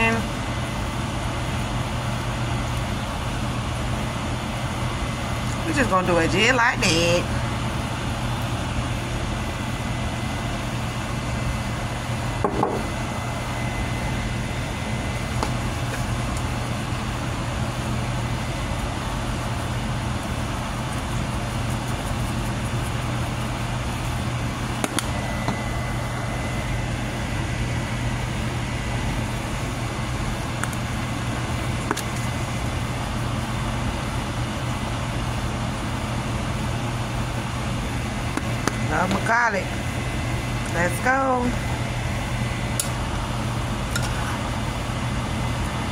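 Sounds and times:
machine hum with high whine: 0.0 - 45.9.

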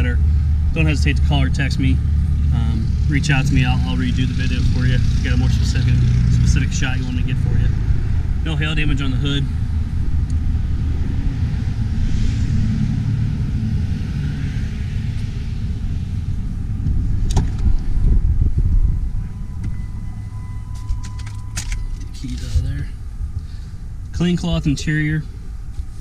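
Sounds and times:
low rumble: 0.0 - 26.0.

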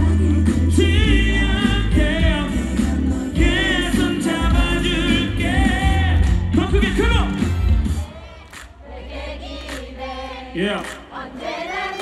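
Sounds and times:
man singing pop ballad: 0.0 - 7.2
band backing: 0.0 - 8.8.

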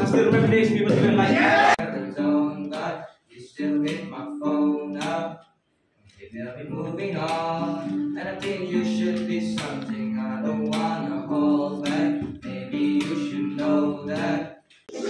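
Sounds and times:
acoustic guitar strumming: 0.0 - 2.9, 6.7 - 14.5
boy singing: 6.6 - 15.0.

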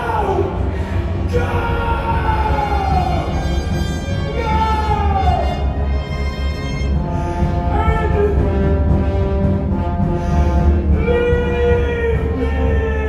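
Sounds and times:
dark orchestral music: 0.0 - 13.0
heavy low rumble: 0.0 - 13.0.

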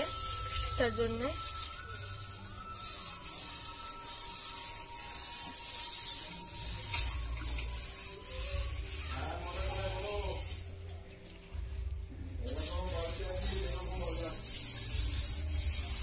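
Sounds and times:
hand rubbing clay on metal pot: 0.0 - 10.9, 12.4 - 16.0.

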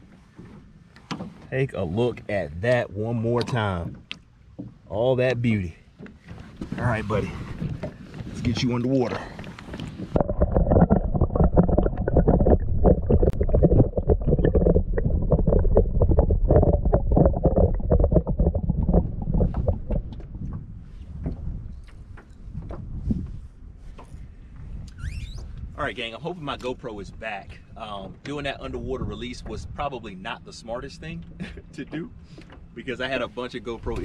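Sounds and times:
muffled underwater water sloshing: 5.7 - 24.8.

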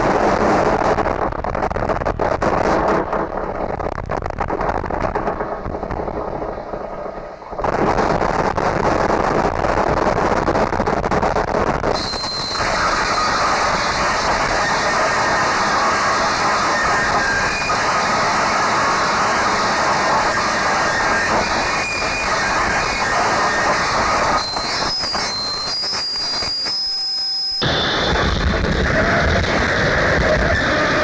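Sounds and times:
low rumble: 0.0 - 24.4
harsh noise static: 0.0 - 31.0
high whistling tones: 11.9 - 18.0, 20.2 - 28.3.

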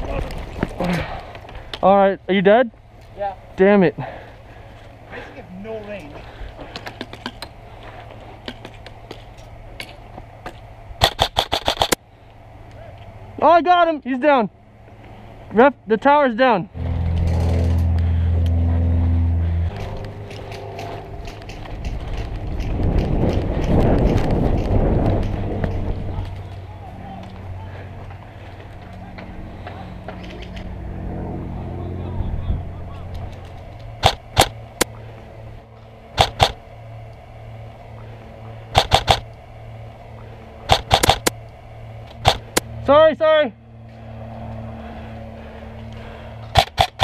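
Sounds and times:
steady low hum: 0.0 - 47.0
airsoft rifle shots: 11.0 - 12.0, 34.0 - 34.6, 36.2 - 36.6, 38.7 - 39.3, 40.7 - 41.4, 42.2 - 42.6, 46.5 - 47.0.

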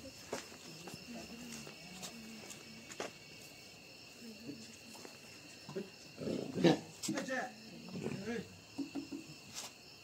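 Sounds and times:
indistinct voices talking: 0.0 - 9.2
night insects chirring: 0.0 - 10.0.

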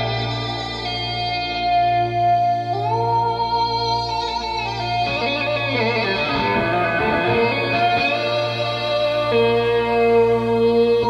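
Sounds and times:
steady low drone: 5.0 - 9.4
overdriven synth guitar notes: 5.0 - 10.6.

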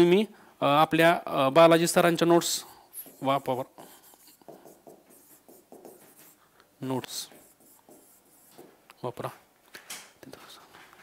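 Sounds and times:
marker writing on a whiteboard: 2.4 - 8.8.

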